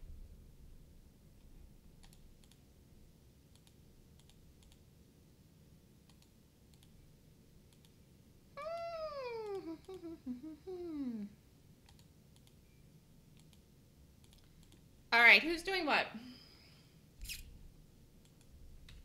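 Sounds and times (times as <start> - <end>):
mouse and keyboard clicks: 3.5 - 4.8, 6.1 - 7.0, 14.2 - 14.8
drawn-out falling vocal call: 8.6 - 11.3.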